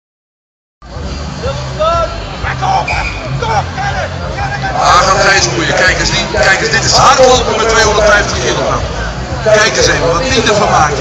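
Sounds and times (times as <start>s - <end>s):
crowd chatter: 0.8s - 11.0s
man talking: 1.4s - 11.0s.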